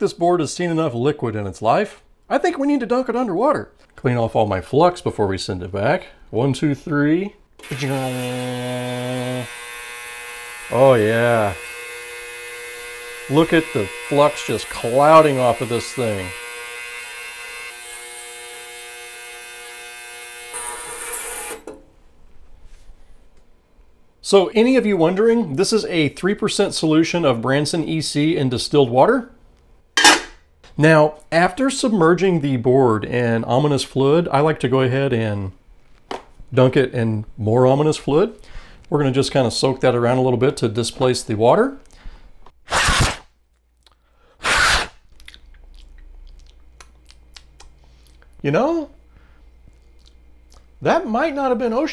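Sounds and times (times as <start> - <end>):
ultrasonic cleaner humming: 7.6 - 19.1.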